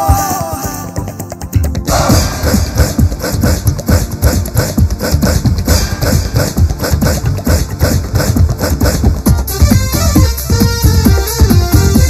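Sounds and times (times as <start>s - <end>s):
driving drum and percussion beat: 0.0s - 12.0s.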